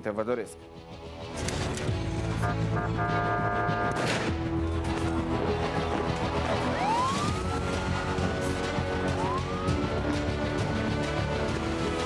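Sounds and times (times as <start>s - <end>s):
crime show theme music: 0.5s - 12.0s
siren tones rising in pitch: 6.6s - 10.0s.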